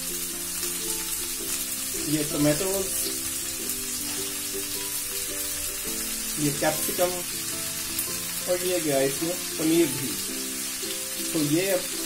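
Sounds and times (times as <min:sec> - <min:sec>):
background music with held notes: 0:00.0 - 0:12.0
vegetables sizzling in oil: 0:00.0 - 0:12.0.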